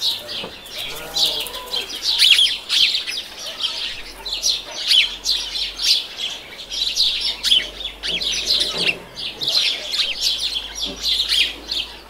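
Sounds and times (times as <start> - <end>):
birds chirping: 0.0 - 12.0.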